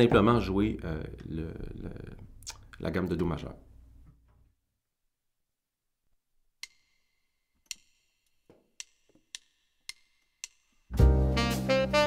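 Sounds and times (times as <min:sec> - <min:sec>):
sharp wooden count-in clicks: 0:06.6 - 0:10.9.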